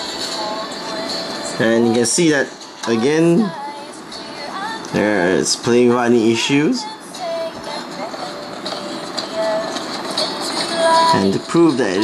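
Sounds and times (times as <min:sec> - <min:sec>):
animated film soundtrack on small speakers: 0:00.0 - 0:12.0.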